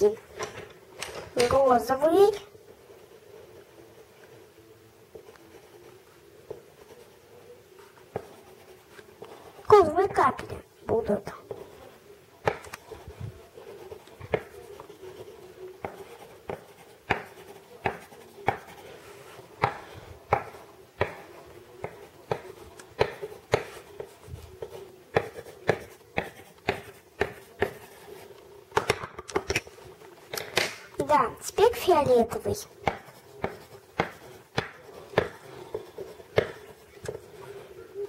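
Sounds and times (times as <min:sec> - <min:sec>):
pencil tapping on paper: 0:08.1 - 0:11.7, 0:12.4 - 0:14.9, 0:15.8 - 0:18.8, 0:19.6 - 0:29.6, 0:31.6 - 0:37.3.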